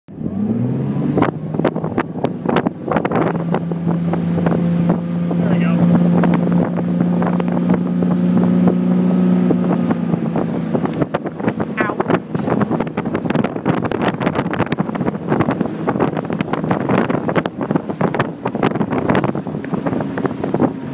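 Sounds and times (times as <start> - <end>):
boat engine throttling up: 0.1 - 20.9
wind buffeting microphone: 0.1 - 20.9.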